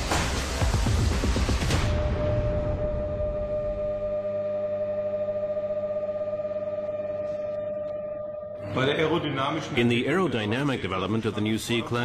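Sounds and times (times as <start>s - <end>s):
steady droning hum: 1.9s - 9.8s.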